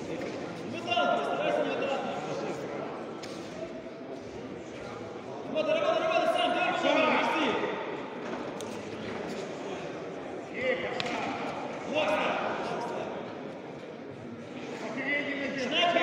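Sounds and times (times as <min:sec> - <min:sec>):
voices calling out echoing: 0:00.0 - 0:08.3, 0:09.2 - 0:13.5.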